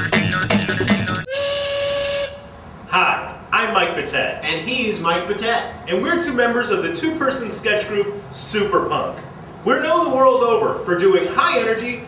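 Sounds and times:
music: 0.0s - 1.3s
loud hiss with whistle tone: 0.1s - 12.0s.

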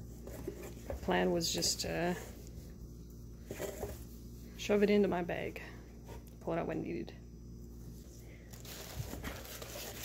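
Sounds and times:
faint room hum: 0.0s - 10.0s
woman's voice: 1.0s - 2.4s, 4.6s - 5.8s, 6.4s - 7.2s.

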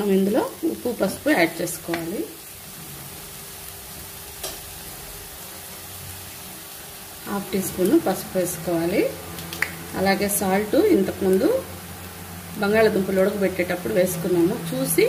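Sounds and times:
food sizzling in a pan: 0.0s - 15.0s.

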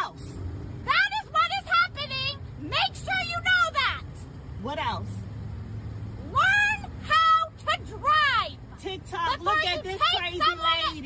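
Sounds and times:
woman shouting angrily: 0.0s - 5.1s, 6.2s - 11.0s
car engine idling: 0.0s - 11.0s.

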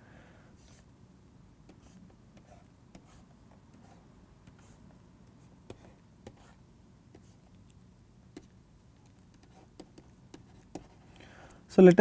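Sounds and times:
low steady hum: 0.0s - 12.0s
stylus tapping on pen tablet: 8.3s - 11.0s.

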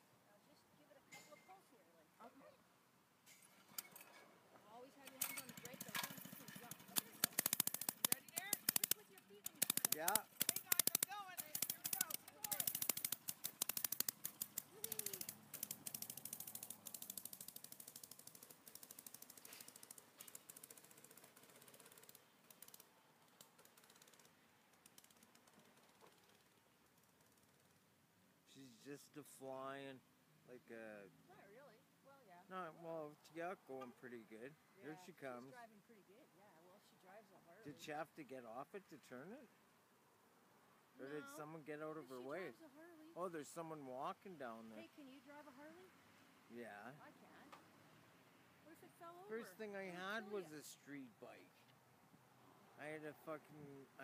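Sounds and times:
mini bike engine popping: 5.0s - 27.8s.

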